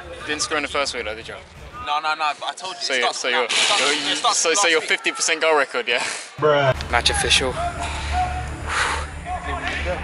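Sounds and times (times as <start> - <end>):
men calling out: 6.5 - 10.0.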